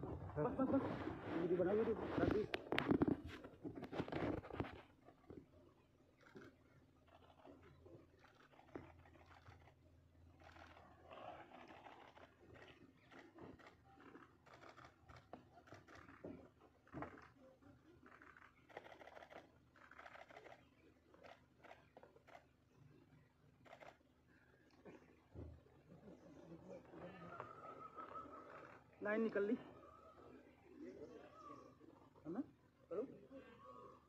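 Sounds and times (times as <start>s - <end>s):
soft rustles: 0.1s - 5.4s.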